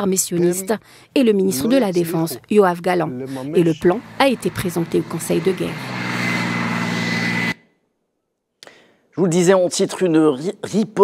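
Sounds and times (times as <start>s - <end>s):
thin high whine: 3.5s - 7.6s
tank engine running: 3.6s - 7.6s.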